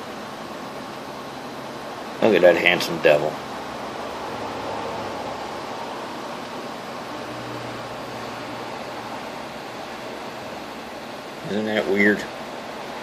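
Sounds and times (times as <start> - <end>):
fan-like room hiss: 0.0 - 13.0.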